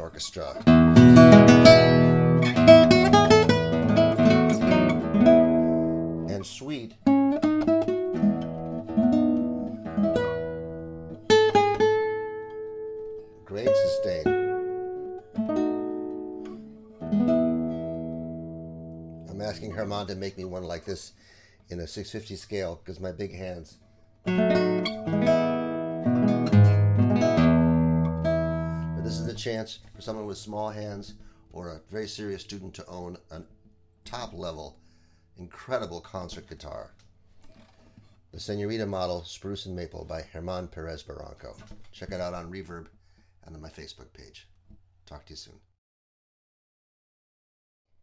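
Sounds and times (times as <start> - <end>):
fingerstyle classical guitar: 0.6 - 20.0, 24.2 - 29.4.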